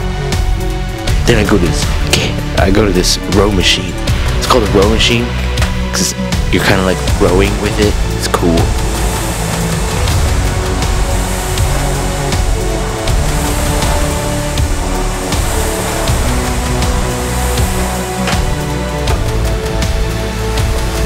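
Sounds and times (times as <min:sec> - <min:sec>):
background music with sustained chords: 0:00.0 - 0:21.0.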